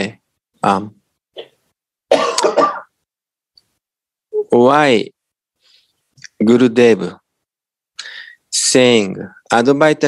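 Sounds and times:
person clearing throat: 0:02.1 - 0:02.9.

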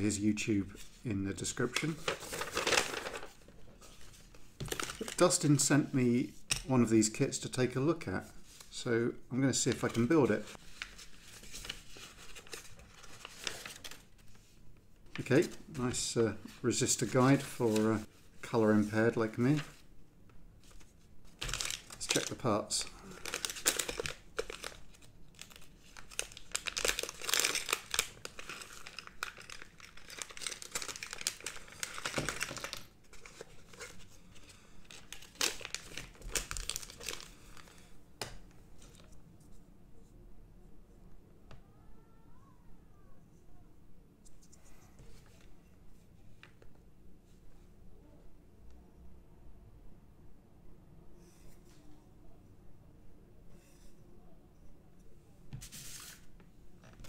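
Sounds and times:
paper sheets rustling: 0:00.8 - 0:05.6, 0:09.6 - 0:14.5, 0:15.1 - 0:19.8, 0:55.6 - 0:56.3
plastic bag crinkling: 0:21.4 - 0:34.1, 0:34.8 - 0:37.7.

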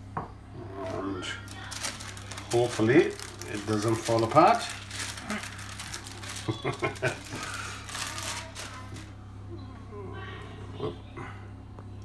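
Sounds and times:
plastic sheet rustling: 0:00.8 - 0:09.1.

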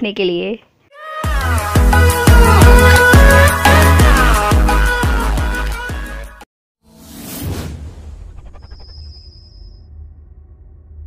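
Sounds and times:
music with bass beat: 0:01.3 - 0:06.4
whoosh sound effect: 0:06.9 - 0:09.7
low rumble: 0:07.0 - 0:11.0.

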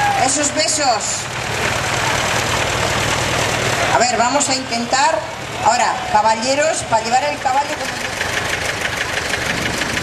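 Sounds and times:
crowd applauding: 0:01.4 - 0:04.0.

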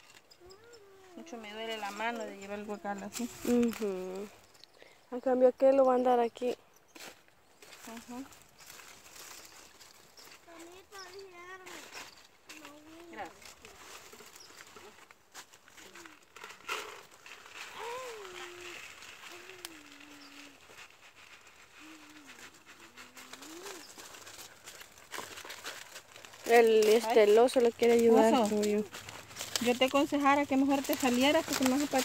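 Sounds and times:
dry leaves rustling: 0:00.0 - 0:04.5, 0:07.0 - 0:32.0.

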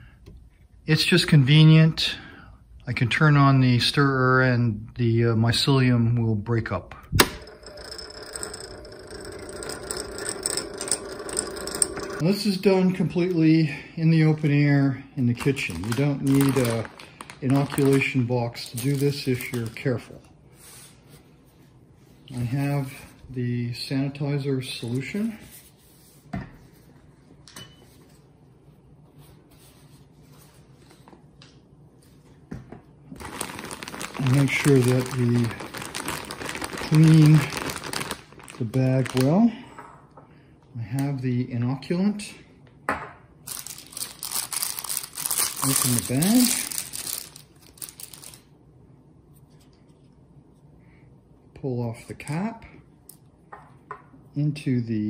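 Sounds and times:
magnetic stirrer motor humming: 0:07.3 - 0:12.2
plastic bag crinkling: 0:15.3 - 0:20.1, 0:33.1 - 0:39.5, 0:43.5 - 0:48.5.

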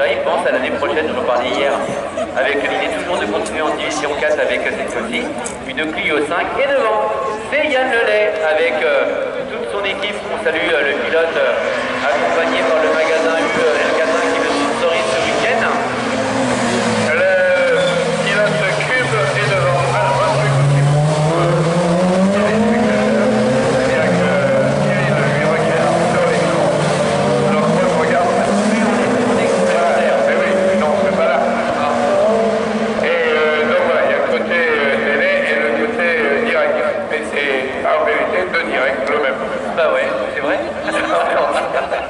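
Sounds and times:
racing car engines revving: 0:00.0 - 0:42.0.

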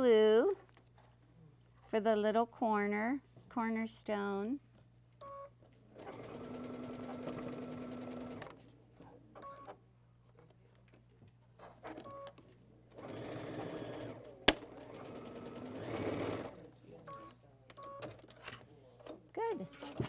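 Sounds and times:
sewing machine stitching: 0:06.0 - 0:08.6, 0:12.9 - 0:16.6.

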